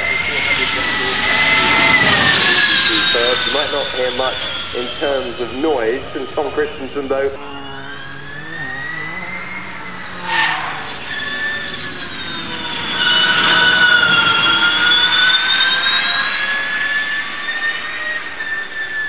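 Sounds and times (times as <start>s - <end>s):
electric car drivetrain whining: 0.0s - 19.0s.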